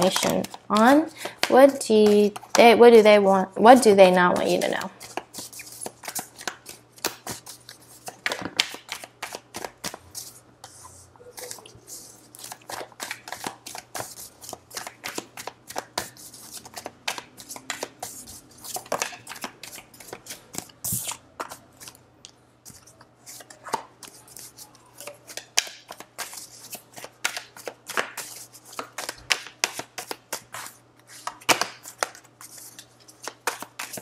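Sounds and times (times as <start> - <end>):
cards being shuffled: 0.0 - 2.7, 4.2 - 22.0, 22.7 - 34.0.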